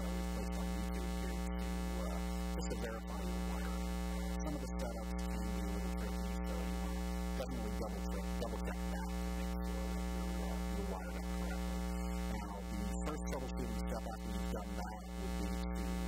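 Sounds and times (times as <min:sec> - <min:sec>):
electrical mains hum: 0:00.0 - 0:16.0.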